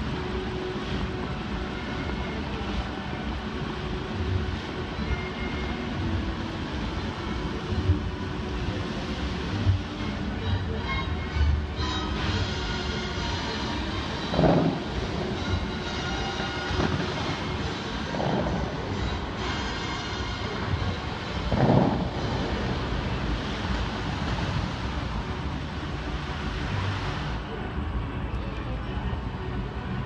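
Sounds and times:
fountain water jets rushing: 0.0 - 30.0.

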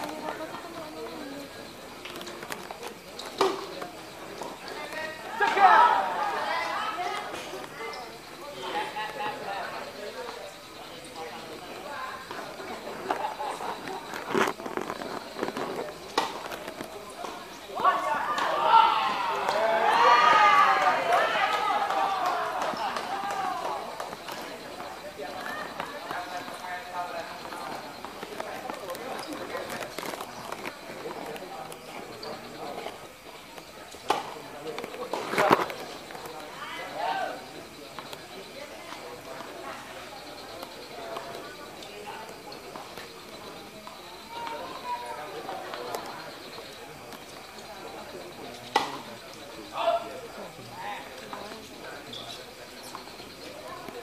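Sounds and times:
people talking and calling out: 0.0 - 54.0
voices chattering: 0.0 - 54.0.

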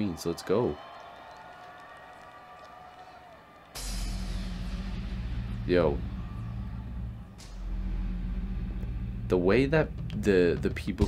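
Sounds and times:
crowd cheering: 0.0 - 9.2
heavy deep bass: 3.8 - 11.0.

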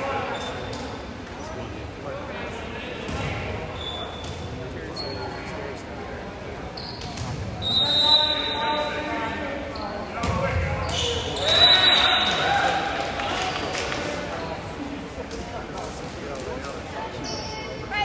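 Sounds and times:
referee's whistle: 7.6 - 8.9, 10.9 - 12.4.

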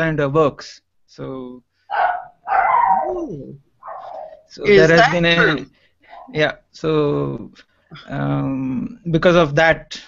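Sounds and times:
dog barking and yelping: 1.9 - 6.4.

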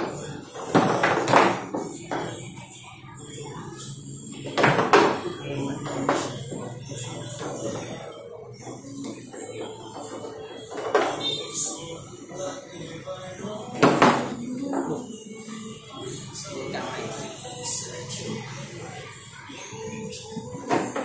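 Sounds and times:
foosball ball clacks: 0.0 - 2.3, 4.4 - 6.3
background murmur: 0.0 - 21.0.

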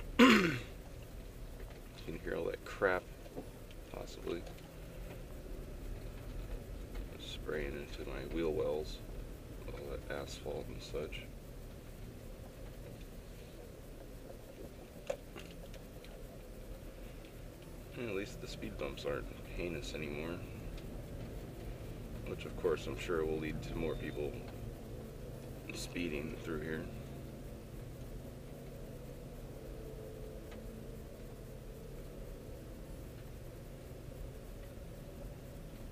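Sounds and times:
car tyres rolling on asphalt: 0.0 - 35.9.

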